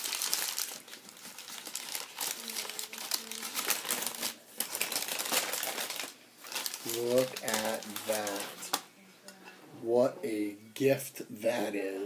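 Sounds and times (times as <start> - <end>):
packing paper crumpling: 0.0 - 8.8.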